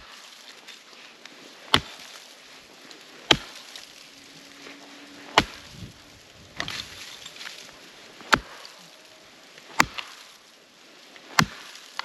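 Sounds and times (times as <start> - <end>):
axe chopping wood: 1.7 - 2.2, 3.2 - 3.8, 5.3 - 5.9, 6.6 - 7.0, 8.2 - 8.7, 9.7 - 10.3, 11.3 - 12.0.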